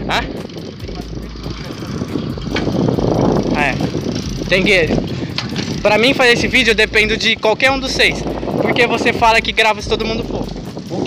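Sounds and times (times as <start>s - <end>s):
wind buffeting microphone: 0.0s - 11.0s
bicycle tyres on road: 0.4s - 11.0s.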